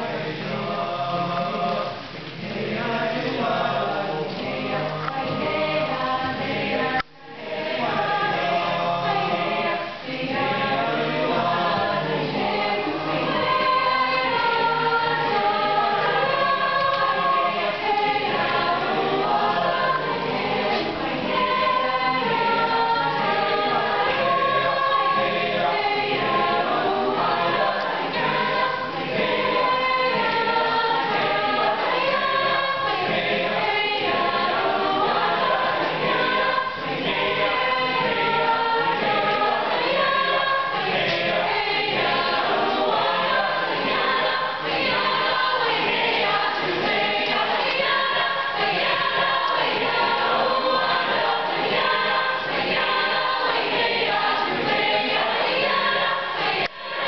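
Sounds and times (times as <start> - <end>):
choir singing a cappella: 0.0 - 57.0.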